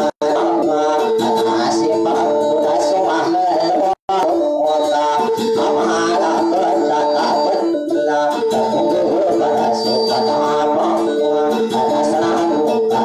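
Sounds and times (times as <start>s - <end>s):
plucked string instrument music: 0.0s - 13.0s.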